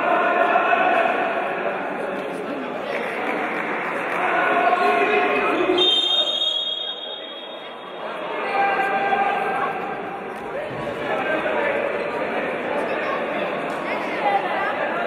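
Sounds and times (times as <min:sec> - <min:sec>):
echoing voices and chatter: 0:00.0 - 0:15.0
referee's whistle blast: 0:05.8 - 0:07.7.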